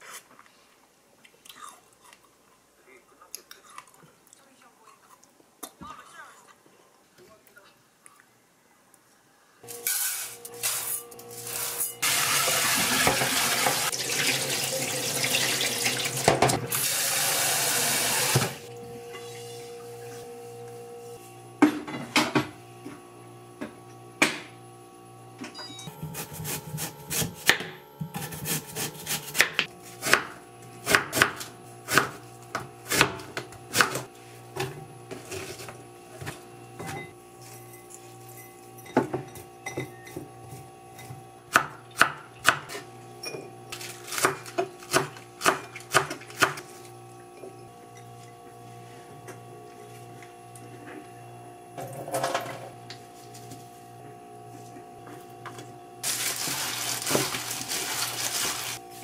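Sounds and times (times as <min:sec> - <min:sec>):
rice washed by hand: 0:12.0 - 0:18.6, 0:56.0 - 0:59.0
tap water running into pot: 0:12.0 - 0:18.6.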